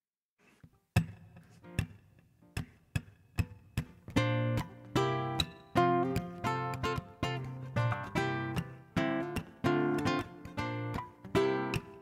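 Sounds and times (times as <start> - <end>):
acoustic guitar strums: 0.9 - 12.0.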